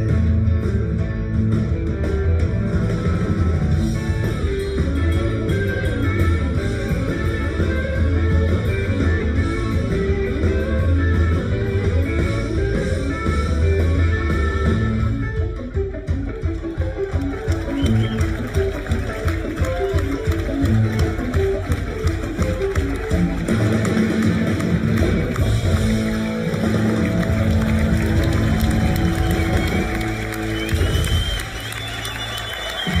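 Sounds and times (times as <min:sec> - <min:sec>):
drums: 0:00.0 - 0:33.0
electric guitar: 0:00.0 - 0:33.0
upright bass: 0:00.0 - 0:33.0.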